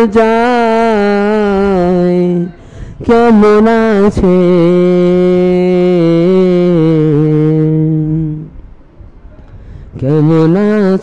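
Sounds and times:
person singing long note: 0.0s - 8.6s.

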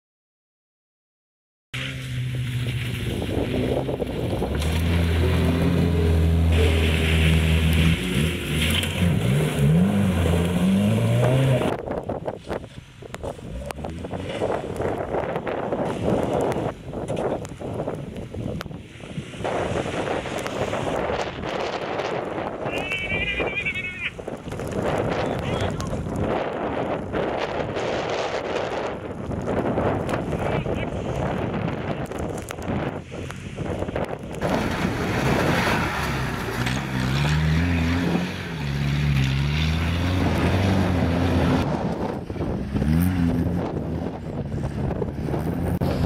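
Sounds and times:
car engine revving: 1.8s - 12.1s, 34.3s - 46.0s
people's voices: 22.7s - 24.2s, 25.1s - 26.1s
car engine labouring roughly: 34.4s - 46.0s.

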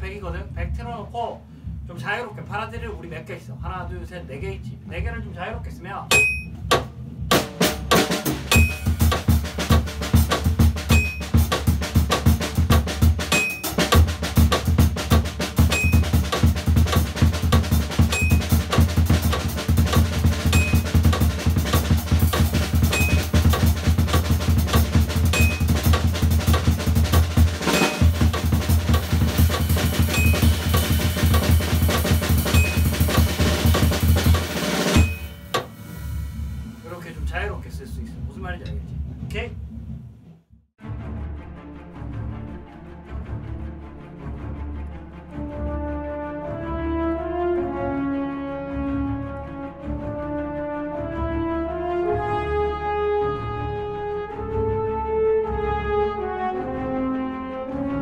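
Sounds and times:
drum kit playing: 0.0s - 40.4s
metronome high click: 6.1s - 6.6s.

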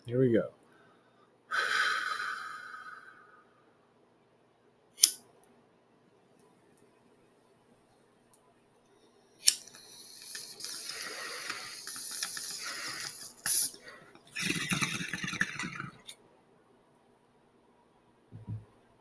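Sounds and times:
sharp click: 5.0s - 5.2s
loud hiss: 9.6s - 14.8s
water bong bubbling: 14.3s - 16.1s.

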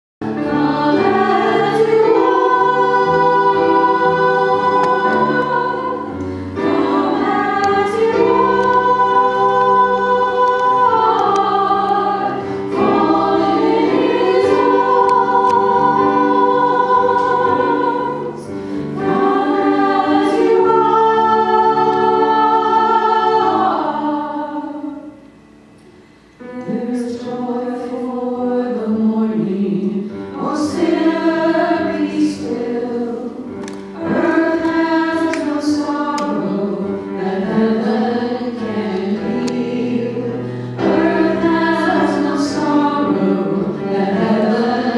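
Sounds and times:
group singing a worship song: 0.2s - 25.2s, 26.4s - 44.9s
keyboard accompaniment: 0.2s - 44.9s.

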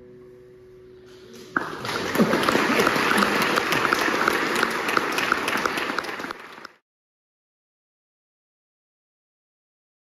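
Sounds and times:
audience clapping: 1.6s - 6.8s.

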